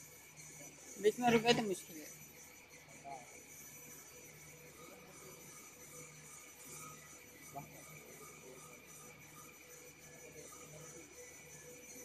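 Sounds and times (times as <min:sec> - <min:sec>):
faint machine hum: 0:00.0 - 0:12.0
thin steady tones: 0:00.0 - 0:12.0.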